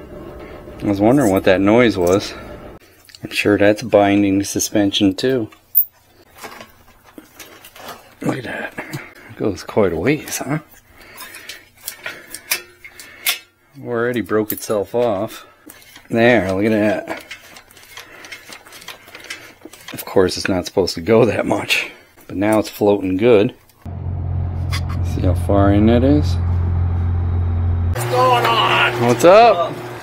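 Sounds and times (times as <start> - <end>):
bicycle frame clicks and rattles: 17.2 - 20.1.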